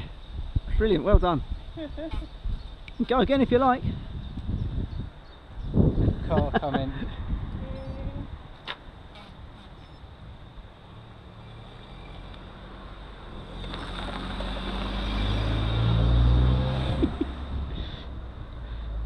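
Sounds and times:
car passing by: 0:11.1 - 0:18.3.

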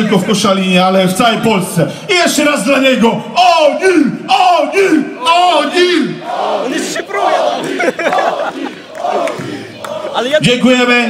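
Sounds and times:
crowd chanting and shouting: 0:03.3 - 0:11.0.

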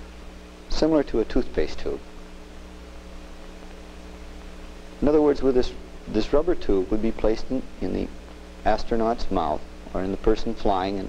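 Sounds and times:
mains hum with hiss: 0:00.0 - 0:11.0.

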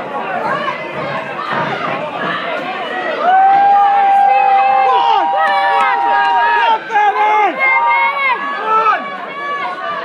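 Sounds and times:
spectators shouting: 0:00.3 - 0:10.0.

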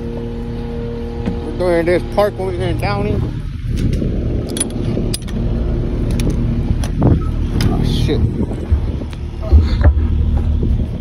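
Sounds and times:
engine running with low rumble: 0:00.0 - 0:11.0.

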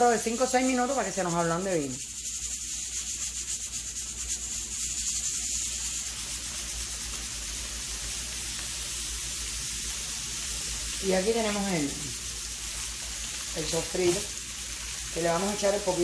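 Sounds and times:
onions sizzling in a pan: 0:00.0 - 0:16.0
pressure cooker steam hissing: 0:00.0 - 0:16.0.

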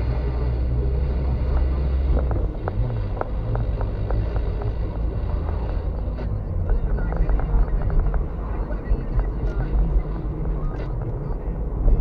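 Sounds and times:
car driving rumble inside cabin: 0:00.0 - 0:12.0.

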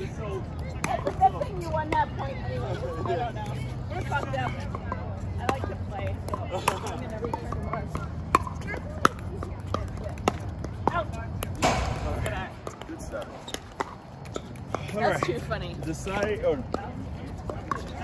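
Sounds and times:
ball bouncing on hard court: 0:00.6 - 0:02.3, 0:04.1 - 0:15.4, 0:16.6 - 0:18.0.

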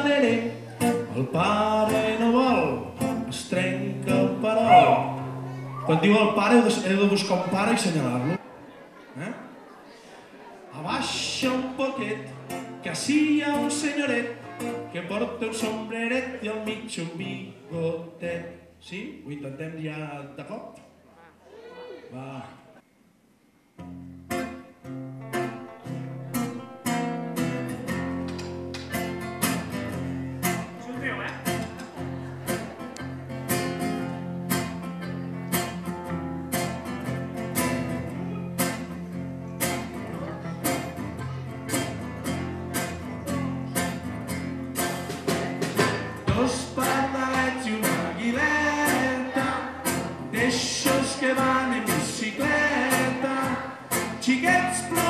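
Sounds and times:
acoustic guitar strumming: 0:00.0 - 0:08.4, 0:11.0 - 0:18.9, 0:23.8 - 0:55.0
drum kit steady beat: 0:44.8 - 0:46.6
children's choir singing: 0:46.2 - 0:54.7.

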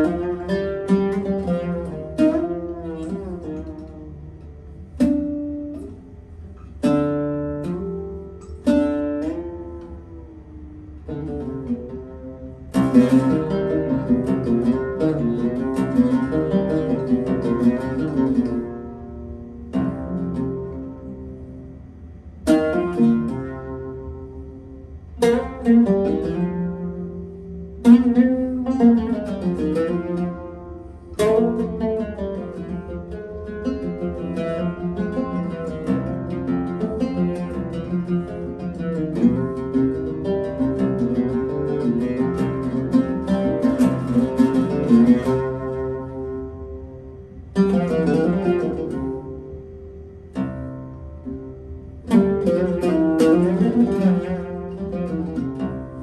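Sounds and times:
oud plucked with a plectrum: 0:00.0 - 0:56.0.

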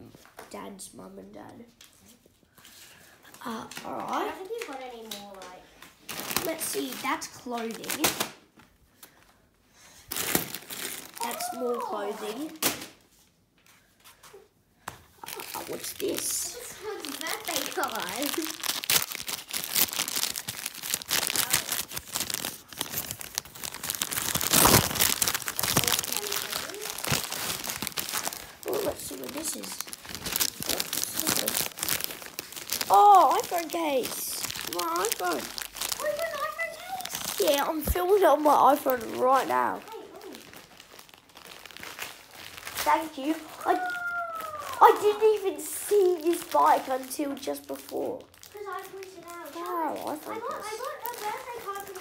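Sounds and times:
gift packaging crinkling: 0:01.9 - 0:08.4, 0:09.9 - 0:52.0
wrapping paper tearing and crumpling: 0:01.9 - 0:08.4, 0:09.8 - 0:13.1, 0:15.1 - 0:52.0.

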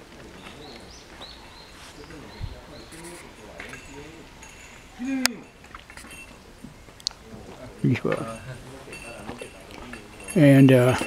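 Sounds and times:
faint outdoor background noise: 0:00.0 - 0:11.0
bird chirping: 0:00.2 - 0:05.0.

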